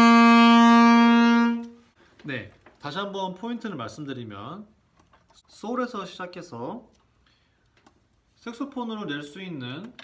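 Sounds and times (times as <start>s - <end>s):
saxophone long note: 0.0s - 1.8s.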